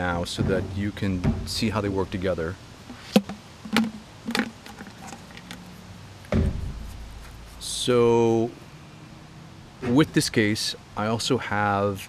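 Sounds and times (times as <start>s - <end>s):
dull thump: 0.3s - 1.8s, 6.3s - 7.5s
items tapping inside water bottle: 2.9s - 5.7s.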